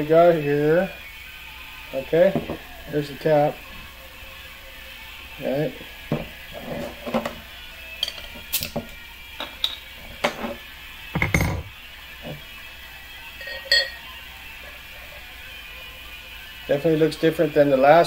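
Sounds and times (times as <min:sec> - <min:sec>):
glass knocking on tabletop: 0:02.4 - 0:02.6, 0:11.2 - 0:11.7
glass clinks and taps: 0:08.0 - 0:08.4, 0:09.4 - 0:10.4, 0:11.2 - 0:11.7, 0:13.4 - 0:14.0.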